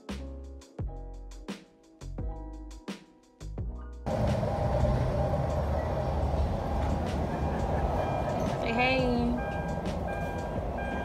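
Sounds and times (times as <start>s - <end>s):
car engine rumble: 4.1s - 11.0s.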